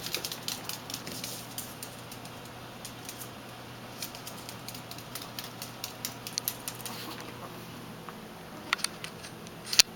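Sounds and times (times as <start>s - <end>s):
dog claws clicking on floor: 0.0s - 7.4s.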